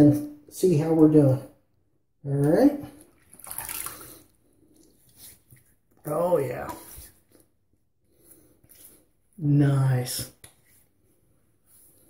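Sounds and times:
water splashing at a sink: 0:02.4 - 0:07.2
water dripping: 0:02.4 - 0:07.4.

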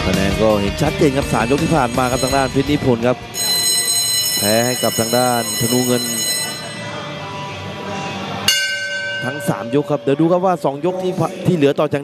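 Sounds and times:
boxing ring bell ringing: 0:01.3 - 0:07.2, 0:08.5 - 0:11.1.

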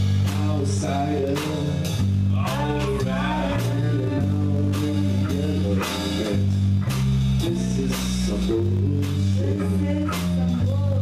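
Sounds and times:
punk band playing: 0:00.0 - 0:11.0.

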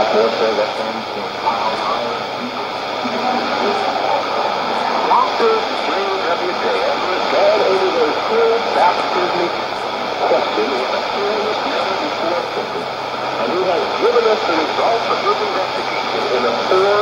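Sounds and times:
radio hiss and static: 0:00.0 - 0:17.0
man preaching over radio: 0:05.1 - 0:09.6, 0:10.2 - 0:17.0.

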